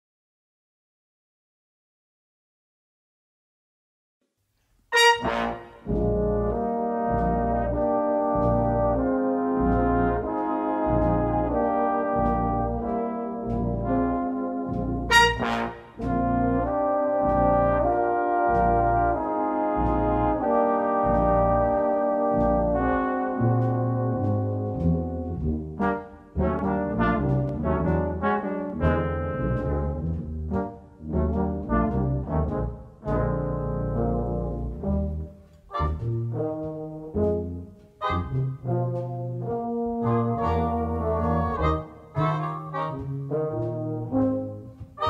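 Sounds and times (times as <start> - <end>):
brass band playing chords: 4.9 - 45.0.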